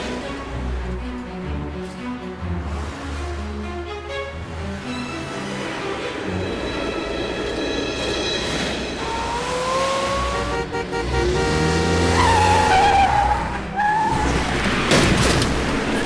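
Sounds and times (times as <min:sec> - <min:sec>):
background music: 0:00.0 - 0:16.0
truck engine and road noise: 0:00.0 - 0:16.0
tyres screeching in a skid: 0:08.4 - 0:16.0.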